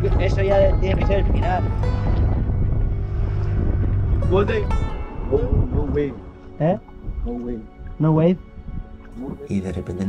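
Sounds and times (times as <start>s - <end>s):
water rushing along hull: 0.0s - 10.0s
wind rumbling on microphone: 0.0s - 10.0s.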